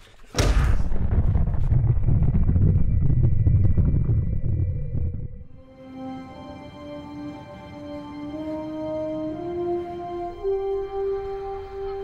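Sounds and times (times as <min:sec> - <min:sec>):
cinematic impact boom: 0:00.4 - 0:05.6
heavy low rumble: 0:00.4 - 0:05.6.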